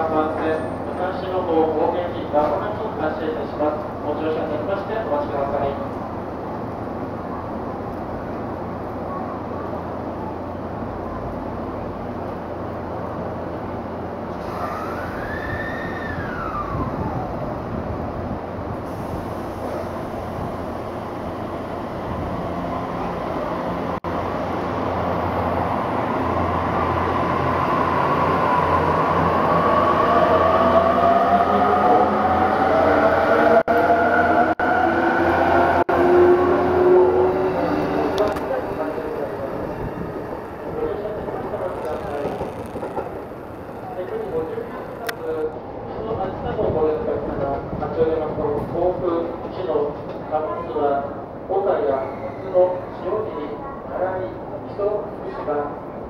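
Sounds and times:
electric train motors whining: 36.8s - 45.2s.

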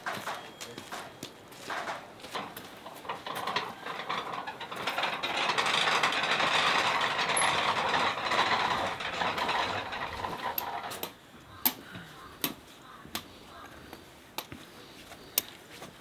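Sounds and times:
metal prayer wheels rattling: 0.0s - 11.2s.

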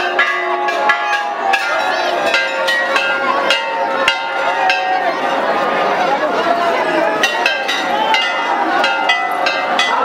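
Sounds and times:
faint crowd voices: 0.0s - 10.0s
temple bells ringing: 0.0s - 10.0s.

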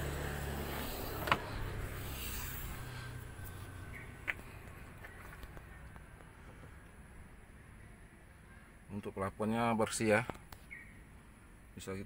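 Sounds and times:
car engine idling: 0.0s - 8.8s
car door latch clicks: 1.2s - 1.5s.

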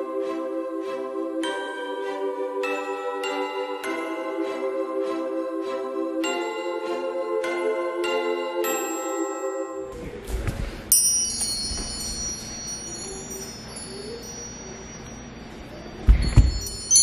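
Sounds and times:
metal wind chime ringing: 10.9s - 17.0s.

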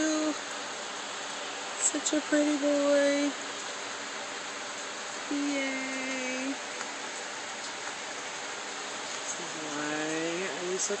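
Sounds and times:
woman speaking: 0.0s - 0.4s, 1.8s - 3.4s, 5.3s - 6.6s, 9.3s - 11.0s
steady hiss: 0.0s - 11.0s.

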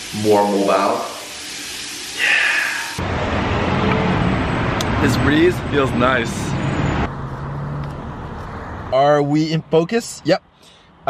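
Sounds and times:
road traffic hiss: 0.0s - 8.9s, 10.0s - 11.0s.

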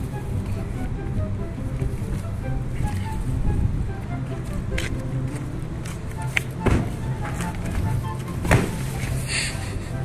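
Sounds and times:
background music: 0.0s - 10.0s
steady low hum: 0.0s - 10.0s.

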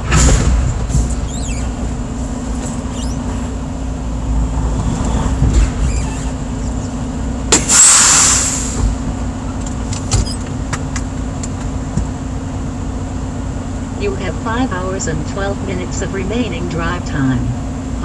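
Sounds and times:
truck engine idling: 0.0s - 18.0s
compressed air hiss: 7.6s - 8.8s.

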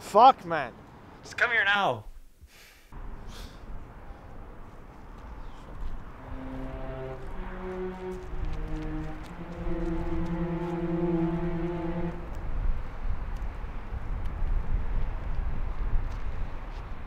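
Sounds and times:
low outdoor rumble: 3.0s - 13.2s
slow low held music notes: 6.0s - 12.8s.

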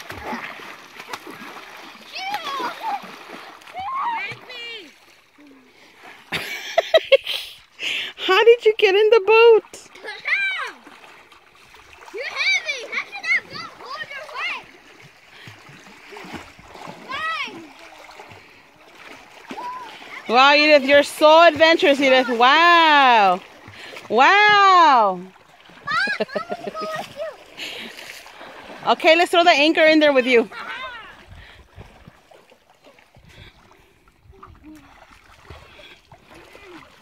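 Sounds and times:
water splashing: 0.0s - 37.0s
children calling and squealing: 2.0s - 5.6s, 9.9s - 10.9s, 12.1s - 14.8s, 17.0s - 18.0s, 25.8s - 27.6s, 30.4s - 31.3s.

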